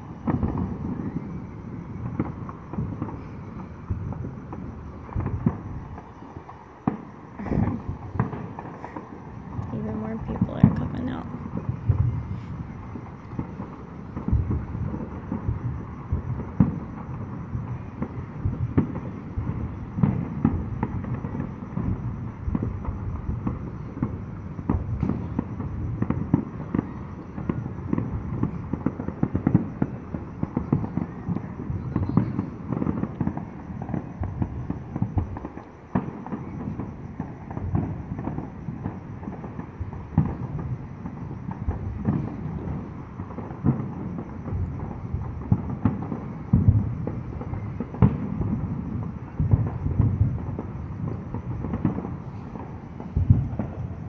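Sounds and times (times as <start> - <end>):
fireworks booms and pops: 0.0 - 54.0.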